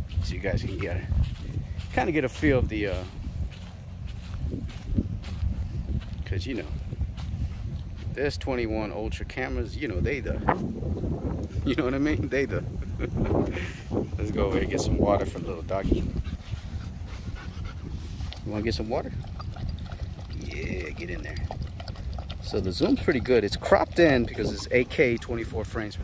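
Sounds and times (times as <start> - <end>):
wind buffeting microphone: 0.0 - 26.0
dog panting: 15.3 - 26.0.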